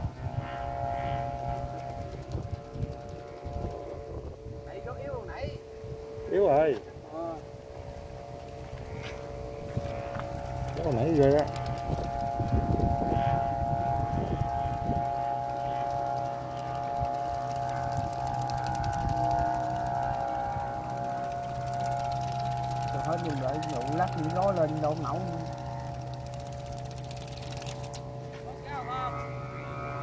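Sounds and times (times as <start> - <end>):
kite flute chord: 0.0 - 26.6, 27.2 - 30.0
wind buffeting: 0.0 - 30.0.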